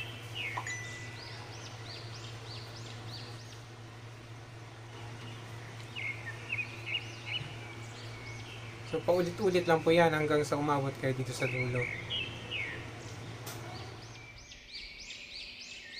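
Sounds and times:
steady low hum: 0:00.0 - 0:14.7
birds chirping: 0:00.0 - 0:15.9.

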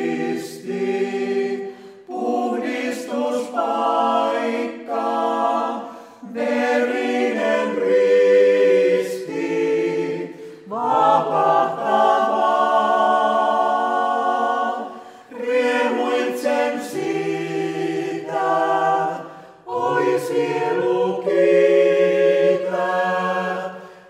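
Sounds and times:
mixed choir singing a hymn: 0:00.0 - 0:24.0.

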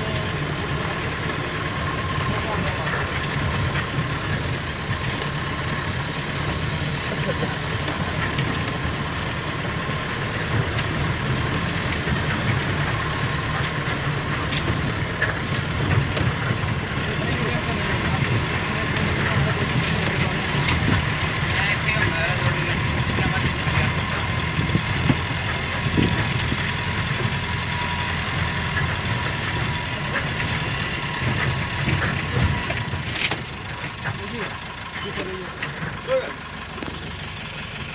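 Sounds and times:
vehicle engine humming: 0:00.0 - 0:37.9.

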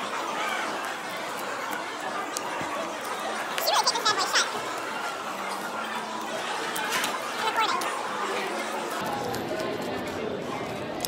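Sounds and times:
chatter of many voices: 0:00.0 - 0:11.0.

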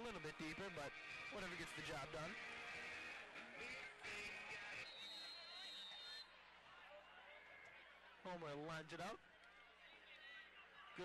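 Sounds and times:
background music: 0:00.0 - 0:04.9.

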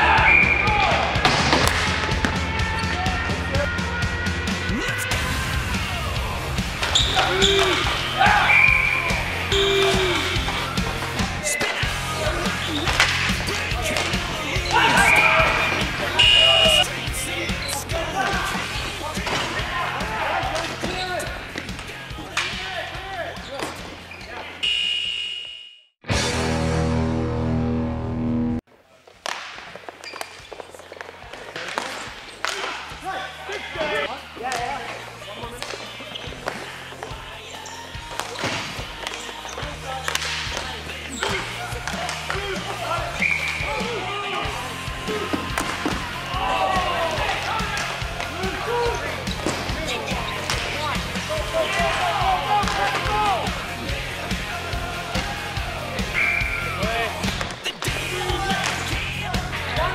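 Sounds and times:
background music: 0:00.0 - 0:25.0, 0:26.0 - 0:28.6, 0:32.5 - 0:59.9
players calling out: 0:00.0 - 0:25.6, 0:30.0 - 0:59.9
hockey sticks and ball clacking: 0:00.1 - 0:03.7, 0:06.7 - 0:25.2, 0:29.0 - 0:44.0, 0:44.9 - 0:54.4, 0:56.1 - 0:59.9
loud held tone: 0:16.2 - 0:16.8, 0:24.6 - 0:26.0.

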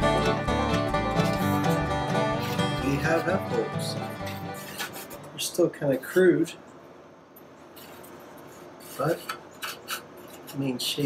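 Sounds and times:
hand brushing wooden guitar body: 0:01.0 - 0:05.2.

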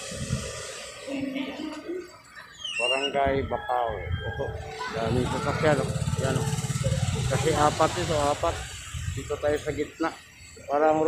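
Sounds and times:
people talking: 0:00.2 - 0:02.2, 0:02.8 - 0:11.0
vehicle engine idling: 0:04.8 - 0:11.0.

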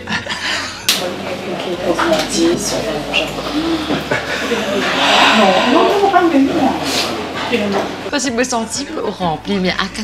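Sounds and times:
people talking: 0:00.9 - 0:10.0.

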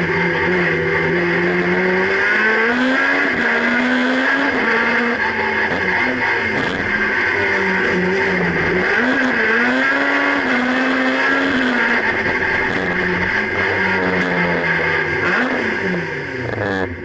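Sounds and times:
race car engine revving: 0:00.0 - 0:17.0.

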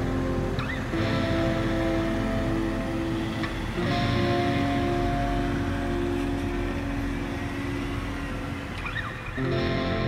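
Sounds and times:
sustained music chord: 0:00.0 - 0:08.8
car engine rumbling: 0:00.0 - 0:09.7.

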